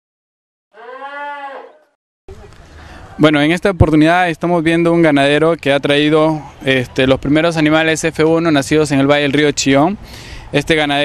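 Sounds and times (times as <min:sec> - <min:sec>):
cow mooing: 0:00.7 - 0:02.0.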